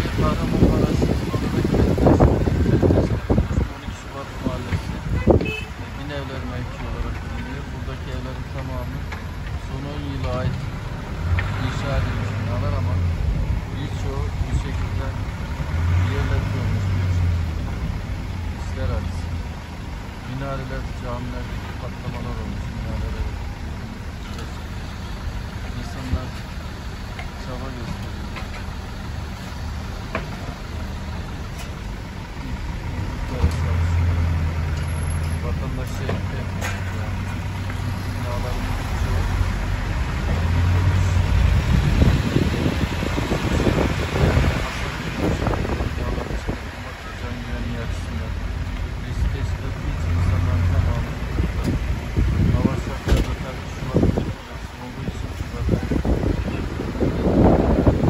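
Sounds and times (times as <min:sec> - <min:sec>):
car engines idling: 0:00.0 - 0:58.0
people's voices: 0:00.0 - 0:58.0.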